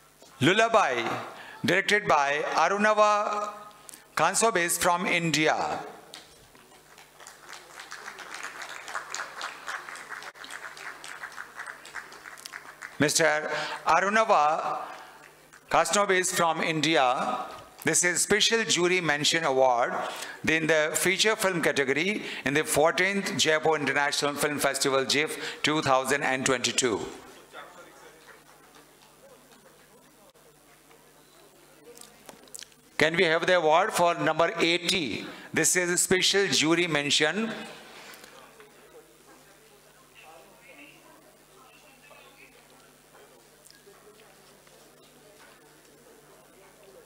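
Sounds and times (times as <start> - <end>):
audience clapping: 6.1 - 13.8, 14.9 - 15.7
faint indistinct talk: 38.1 - 47.0.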